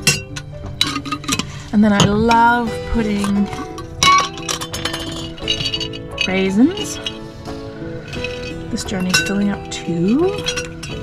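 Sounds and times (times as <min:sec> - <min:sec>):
glass jar clinking: 0:00.0 - 0:11.0.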